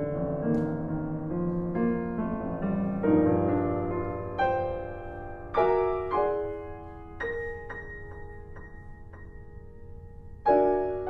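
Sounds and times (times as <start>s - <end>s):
piano chords: 0.0s - 11.0s.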